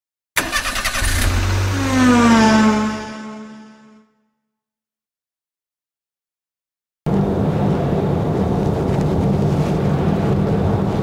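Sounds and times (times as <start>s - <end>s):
car engine starting: 0.4s - 4.0s
sliding pitched tone: 1.5s - 4.1s.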